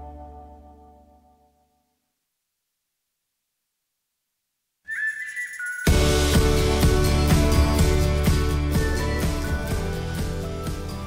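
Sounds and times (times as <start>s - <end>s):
high whistle-like tone with hiss: 4.9s - 6.8s, 8.7s - 10.5s.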